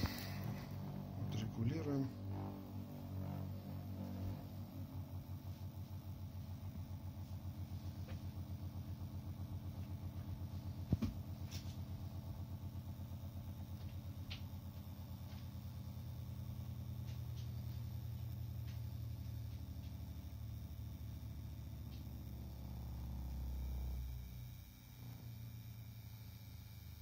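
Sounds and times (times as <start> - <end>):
magnetic stirrer humming and pulsing: 0.0 - 27.0.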